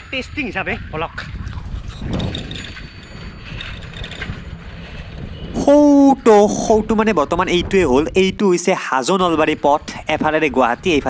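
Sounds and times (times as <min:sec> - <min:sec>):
bike rattling and ticking: 0:00.0 - 0:05.6, 0:06.7 - 0:08.3
wind on microphone: 0:00.0 - 0:11.0
man speaking: 0:05.6 - 0:11.0.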